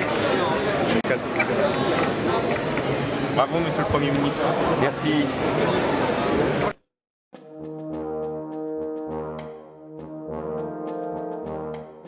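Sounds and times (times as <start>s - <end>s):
brass instruments sustained chords: 7.4s - 12.0s.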